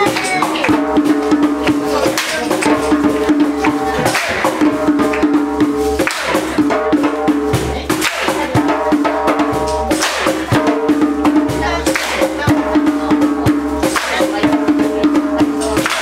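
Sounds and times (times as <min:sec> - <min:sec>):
percussion beat: 0:00.0 - 0:16.0.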